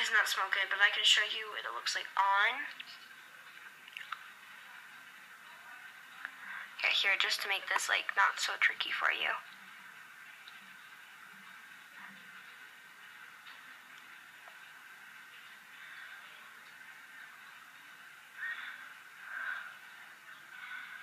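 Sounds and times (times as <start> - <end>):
faint steady hiss: 0.0 - 21.0.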